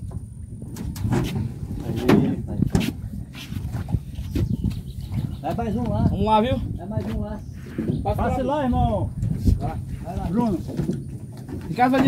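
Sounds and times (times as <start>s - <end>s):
hollow knocks in boats: 0.0s - 6.3s, 9.2s - 12.0s.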